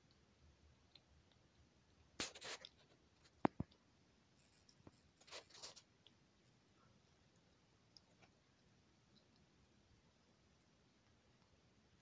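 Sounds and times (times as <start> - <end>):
animal crunching dry food: 4.4 - 6.8.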